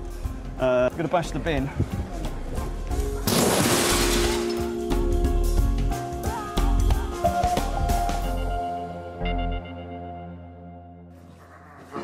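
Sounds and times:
objects crashing into bin: 3.2s - 4.8s.

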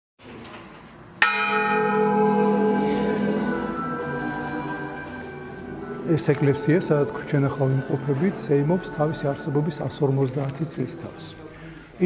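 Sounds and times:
church bell ringing: 1.2s - 11.5s.

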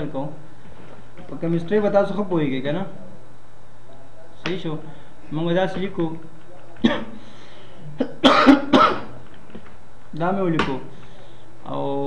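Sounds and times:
man clearing his throat: 6.8s - 7.2s, 8.0s - 9.2s.

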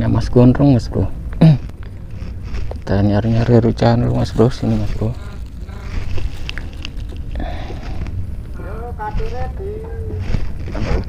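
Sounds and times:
short voiced sounds: 4.1s - 6.9s.

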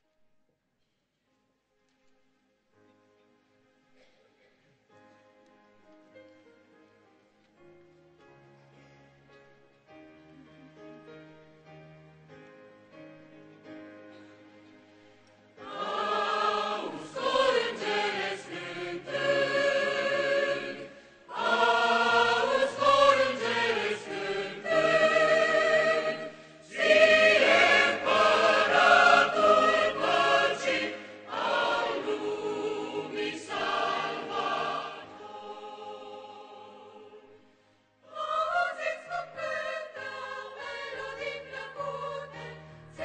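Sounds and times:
keyboard accompaniment: 5.2s - 43.0s
mixed choir singing in parts: 15.6s - 43.0s.

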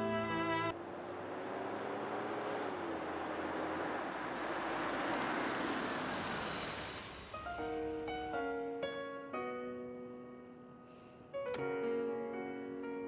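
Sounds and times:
car driving past: 0.4s - 8.2s
piano phrase: 7.3s - 13.0s
soft background music: 7.4s - 13.0s.

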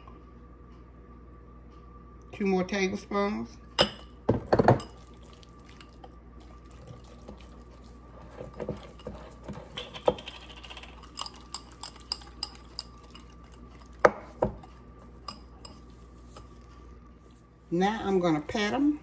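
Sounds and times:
metal clinking on glass bowl: 3.8s - 5.1s, 8.5s - 13.8s
whisk stirring thick paste: 5.4s - 16.7s.

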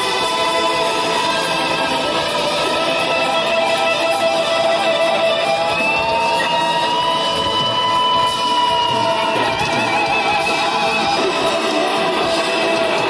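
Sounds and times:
electric guitar solo: 0.0s - 13.0s
rock band playing: 0.0s - 13.0s.

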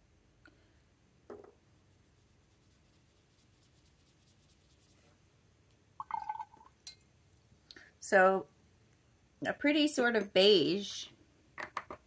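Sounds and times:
soft paintbrush strokes on paper: 1.6s - 5.3s.

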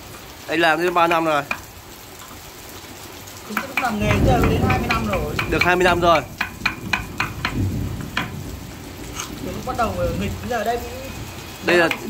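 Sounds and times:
mallet tapping wood chisel: 0.8s - 1.7s, 3.5s - 8.3s.

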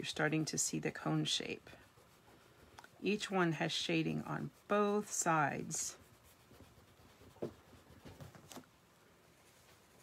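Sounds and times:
pencil scratching on paper: 0.0s - 8.6s.

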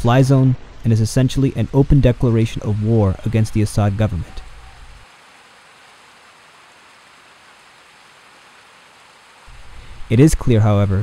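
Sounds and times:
faint steady hiss: 0.0s - 11.0s
high constant whine: 0.0s - 11.0s.

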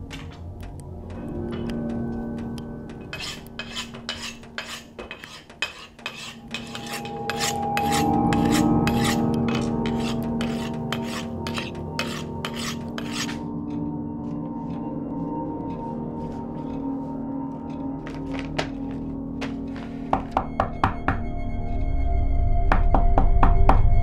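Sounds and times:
knife scraping on honing steel: 3.1s - 13.5s
low sustained drone: 6.4s - 18.0s, 20.8s - 24.0s.

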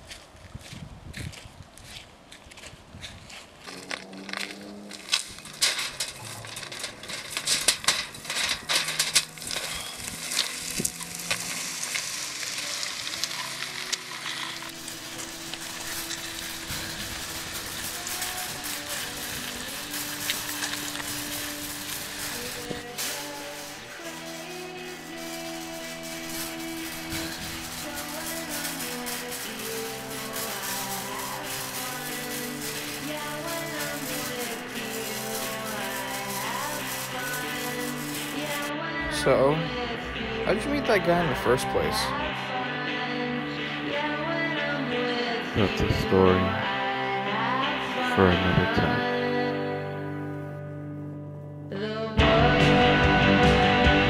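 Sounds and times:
music with long held notes: 3.8s - 54.0s
shopping cart rattling on concrete: 5.0s - 38.7s.

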